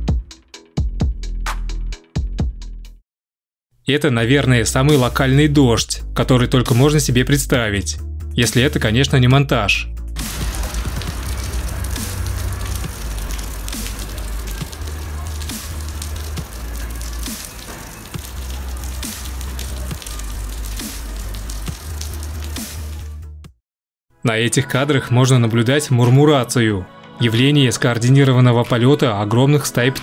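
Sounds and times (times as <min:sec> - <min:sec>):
music with heavy bass: 0:00.0 - 0:03.0, 0:09.9 - 0:23.4
rain falling on asphalt: 0:10.2 - 0:23.2.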